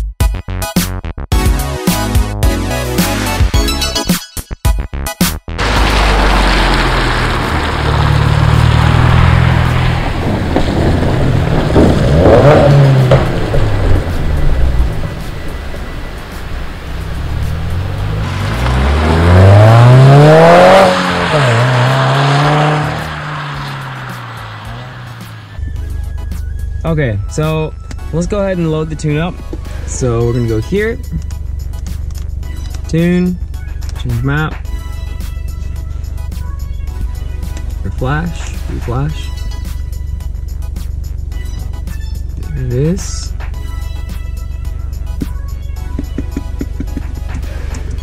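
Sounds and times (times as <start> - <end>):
car engine accelerating: 5.6 - 28.3.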